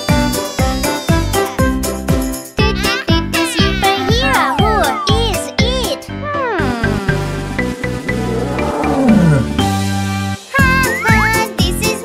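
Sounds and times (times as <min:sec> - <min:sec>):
children's song music: 0:00.0 - 0:12.0
cartoon tiger roar: 0:08.1 - 0:09.6.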